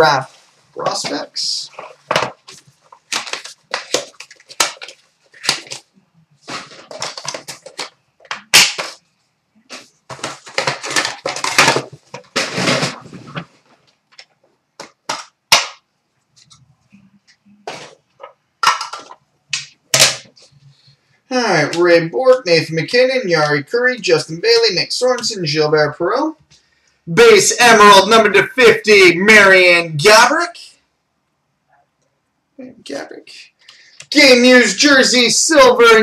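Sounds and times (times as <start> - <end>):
wrappers rustling and crinkling: 1.7 - 8.0.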